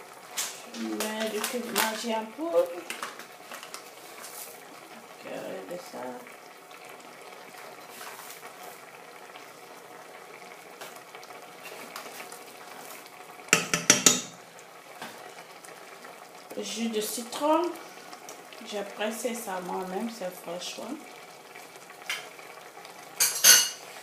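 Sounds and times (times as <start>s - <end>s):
sauce bubbling in oil: 0.0s - 24.0s.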